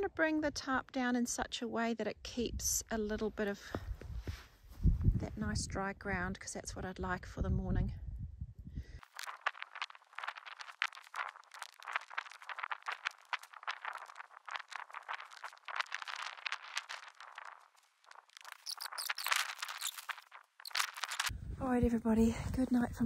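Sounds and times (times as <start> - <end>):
nylon tarp rustling: 9.0 - 21.3.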